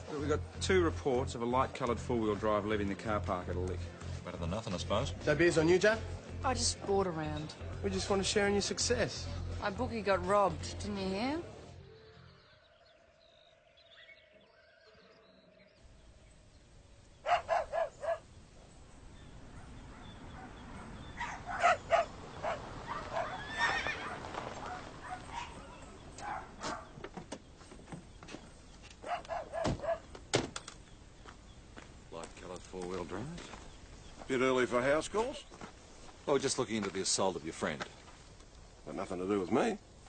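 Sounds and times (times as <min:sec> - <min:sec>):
faint outdoor background: 0:00.0 - 0:40.0
horses whinnying: 0:21.2 - 0:26.0.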